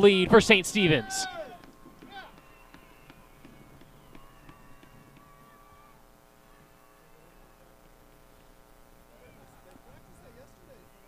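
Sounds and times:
distant voices of players and spectators: 0:00.0 - 0:11.0
low electrical hum: 0:00.0 - 0:11.0.

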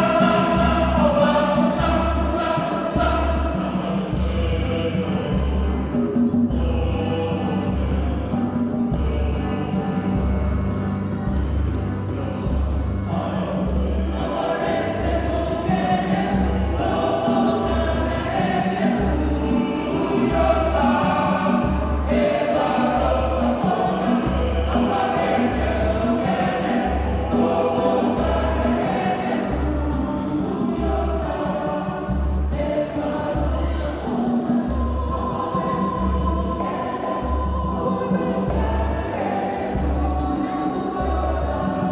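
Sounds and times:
choir singing: 0:00.0 - 0:41.9
steady low beat: 0:00.0 - 0:41.9.

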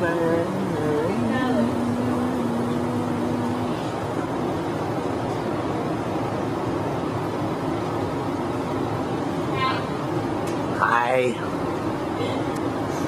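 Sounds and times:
moving walkway rumble and hiss: 0:00.0 - 0:13.0.

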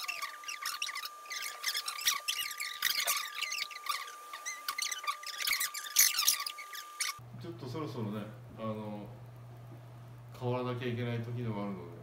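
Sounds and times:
sped up squeaky chatter: 0:00.0 - 0:07.2.

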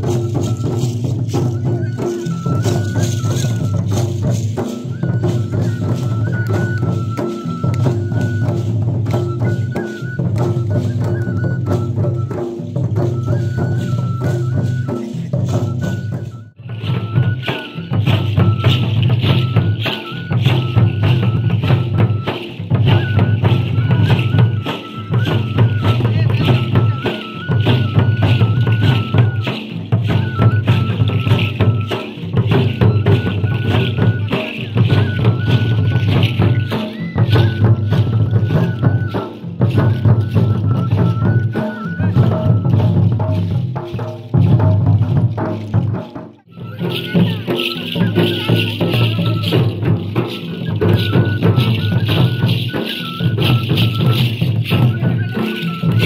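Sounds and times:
barrel drums beating: 0:00.0 - 0:56.0
high repeating melody: 0:46.4 - 0:56.0.

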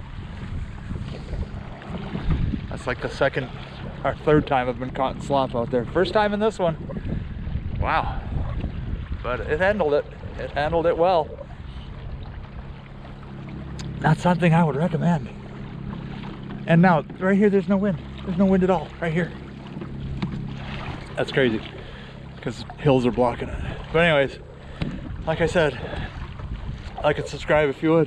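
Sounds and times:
water lapping against kayak hull: 0:00.0 - 0:28.0
wind buffeting microphone: 0:00.0 - 0:28.0.

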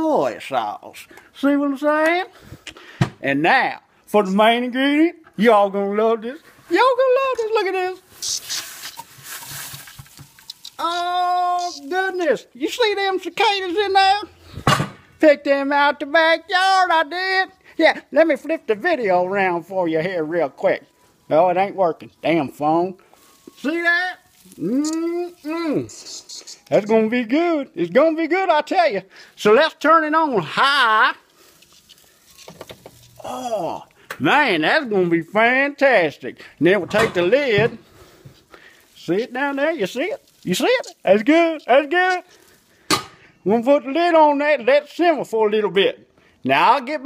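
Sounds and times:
man saying ohh: 0:24.5 - 0:26.3, 0:33.2 - 0:33.9
phone handling rustling: 0:31.6 - 0:33.2.

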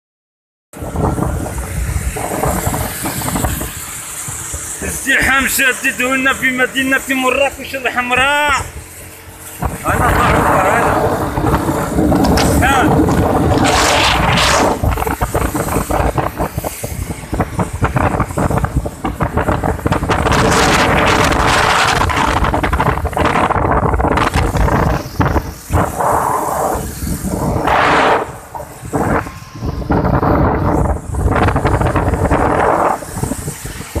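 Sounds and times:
vehicle and wet road noise: 0:00.8 - 0:34.0
wind buffeting microphone: 0:00.8 - 0:34.0.

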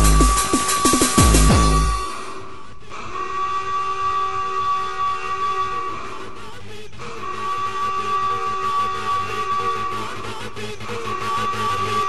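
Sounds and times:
horn-like synthesizer chord: 0:00.0 - 0:02.2.

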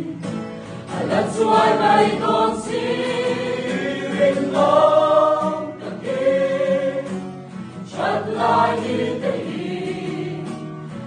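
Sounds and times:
acoustic guitar: 0:00.0 - 0:11.0
mixed choir singing gospel: 0:00.0 - 0:11.0.

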